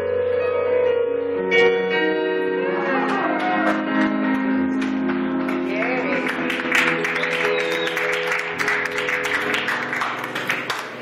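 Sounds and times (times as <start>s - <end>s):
long ringing music notes: 0.0s - 10.1s.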